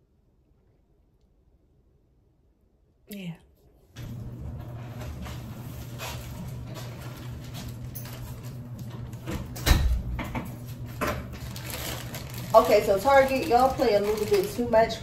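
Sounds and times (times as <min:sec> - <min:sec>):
room hum: 0:00.0 - 0:15.0
plastic bag rustling: 0:04.6 - 0:09.3, 0:10.5 - 0:15.0.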